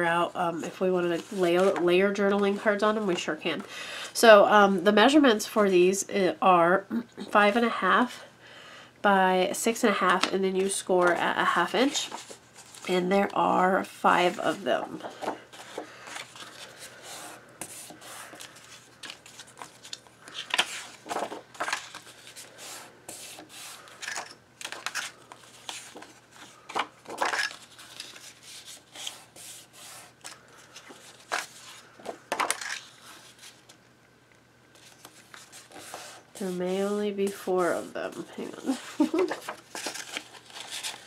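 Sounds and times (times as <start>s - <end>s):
cardstock rustling and sliding: 14.2s - 23.9s, 34.8s - 36.6s.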